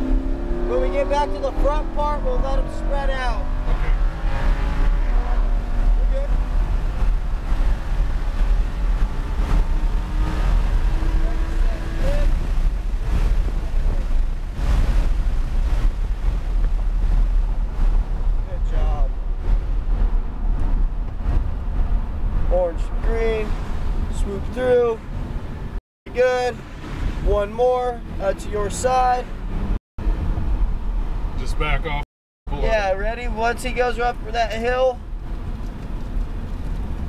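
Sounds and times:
car engine from inside cabin: 0.0 - 18.6
road and wind noise: 0.0 - 37.0.

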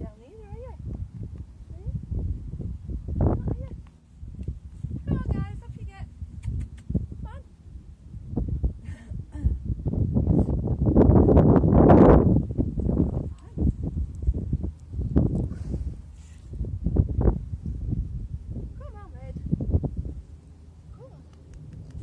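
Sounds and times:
horse blowing breath: 15.4 - 16.6.

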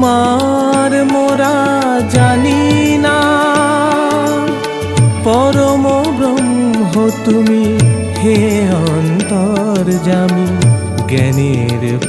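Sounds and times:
tabla and keyboard accompaniment: 0.0 - 12.0.

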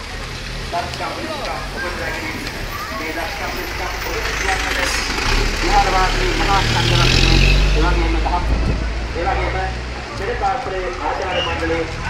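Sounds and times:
bus engine passing: 0.0 - 12.0
people's voices: 0.0 - 12.0.

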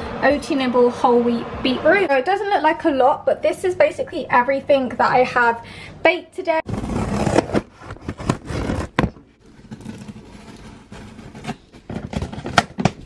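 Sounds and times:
scissors scraping tape and cardboard: 6.7 - 12.9.

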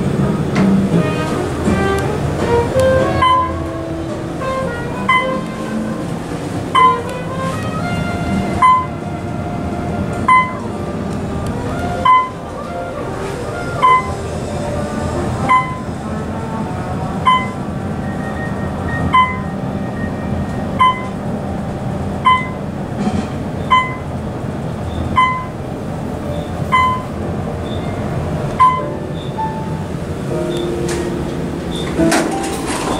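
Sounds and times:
elevator ride rumble: 0.0 - 32.9
short electronic beep: 8.6 - 8.9, 10.3 - 10.6, 12.0 - 12.4, 13.8 - 14.2, 15.5 - 15.8, 17.3 - 17.6, 18.5 - 20.2, 20.8 - 21.1, 22.2 - 22.6, 23.6 - 24.0, 24.9 - 25.6, 26.4 - 28.0, 28.6 - 29.4.

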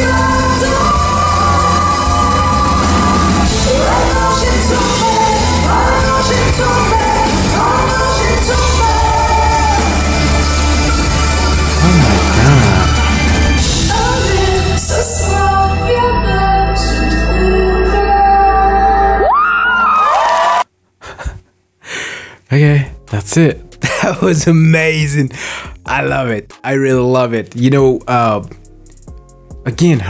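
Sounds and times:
woman singing: 0.0 - 10.2, 13.7 - 19.3
live pop rock band: 0.0 - 15.0
bass line: 0.0 - 15.5.

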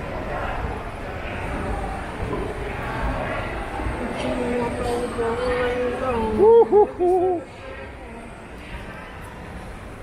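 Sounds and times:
indistinct voices of shoppers: 0.0 - 10.0.

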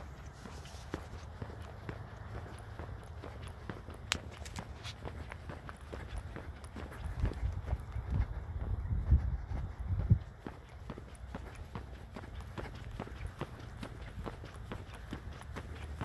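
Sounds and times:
footsteps on paved road: 0.0 - 16.0
low rumble on microphone: 7.0 - 10.4.

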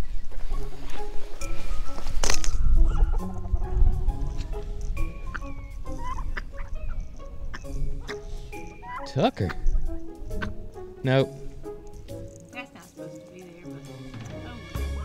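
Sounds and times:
wind rumbling on microphone: 0.0 - 12.4
chickens clucking: 0.0 - 12.8
light music: 0.0 - 15.0.

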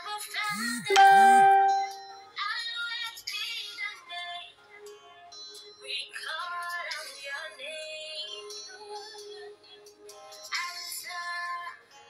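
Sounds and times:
music with high singing voice: 0.0 - 12.0.

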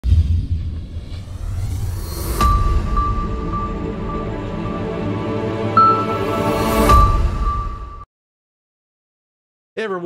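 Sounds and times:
deep rumbling logo intro: 0.0 - 5.8.

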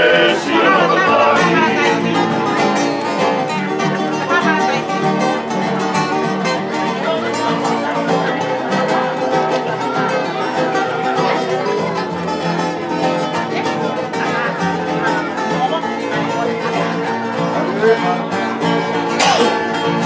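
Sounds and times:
faint voices: 0.0 - 20.0
guitars and ukulele strumming: 0.0 - 20.0.

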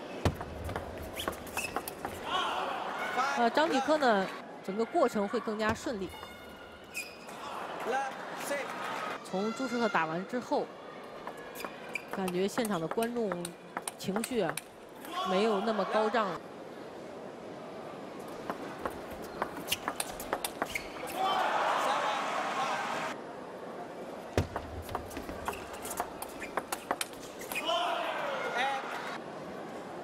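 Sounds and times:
crowd cheering and shouting: 2.2 - 4.4, 21.1 - 23.2.

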